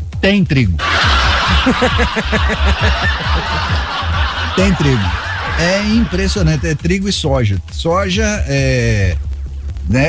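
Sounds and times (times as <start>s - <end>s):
background music: 0.0s - 10.0s
person laughing: 0.8s - 6.9s.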